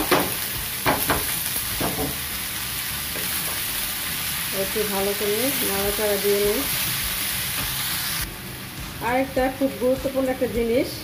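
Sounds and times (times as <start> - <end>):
vegetables sizzling in frying pan: 0.0 - 11.0.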